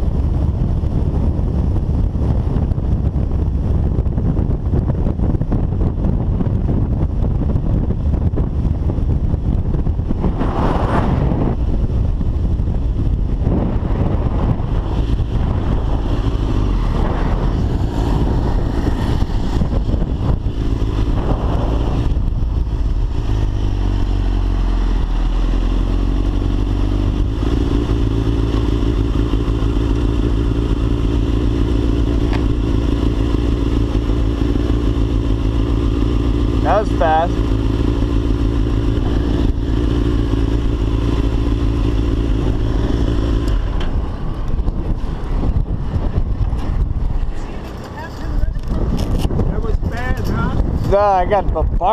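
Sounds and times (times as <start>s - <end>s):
motorcycle engine at low revs: 0.0s - 51.9s.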